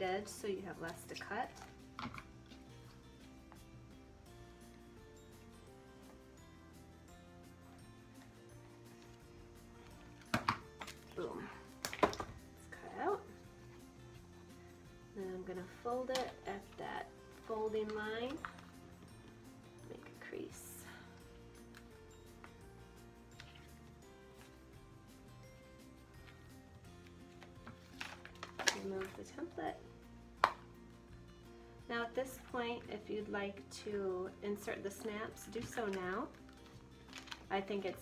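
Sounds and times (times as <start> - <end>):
soft background music: 0.0 - 38.0.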